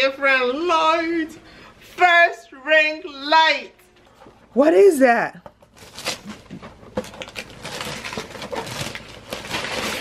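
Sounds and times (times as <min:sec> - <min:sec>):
wrapping paper tearing and crinkling: 0:05.7 - 0:10.0.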